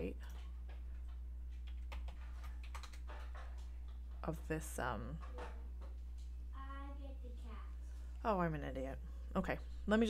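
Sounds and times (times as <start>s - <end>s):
steady low hum: 0.0s - 10.0s
computer keyboard typing: 1.6s - 3.0s.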